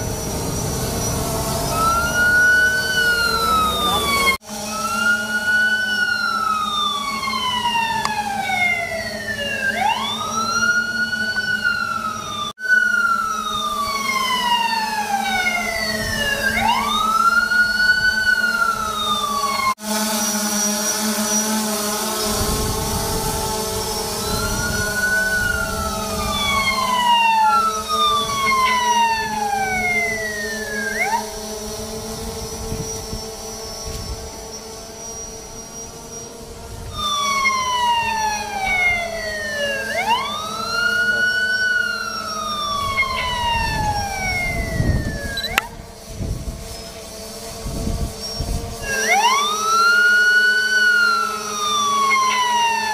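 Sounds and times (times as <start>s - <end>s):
electronic siren wailing: 0.0s - 47.0s, 47.6s - 52.9s.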